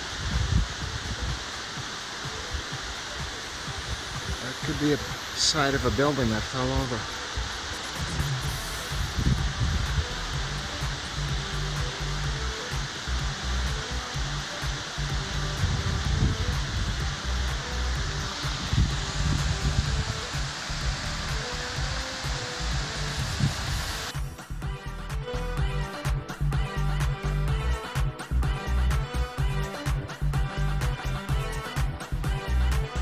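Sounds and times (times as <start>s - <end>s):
music with slow low notes: 0.0s - 33.0s
steady rushing noise: 0.0s - 33.0s.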